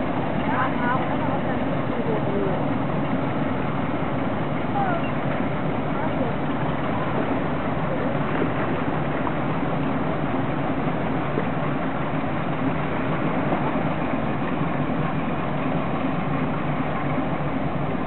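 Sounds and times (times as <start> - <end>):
barge engine rumble: 0.0 - 18.0
moving water: 0.0 - 18.0.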